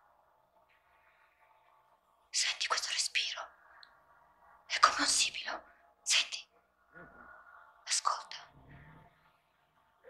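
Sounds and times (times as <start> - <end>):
faint steady drone: 0.0 - 10.0
person whispering: 2.4 - 3.5, 4.7 - 8.6.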